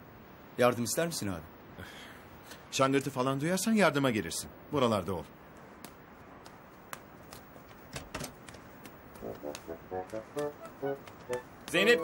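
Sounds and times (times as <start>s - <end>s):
low background noise: 0.0s - 12.0s
footsteps on stone floor: 5.8s - 12.0s.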